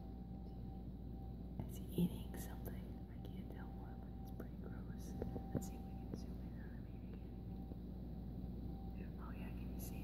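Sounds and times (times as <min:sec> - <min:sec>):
low hum: 0:00.0 - 0:10.0
thin steady tone: 0:00.0 - 0:10.0
faint whispered speech: 0:09.0 - 0:10.0.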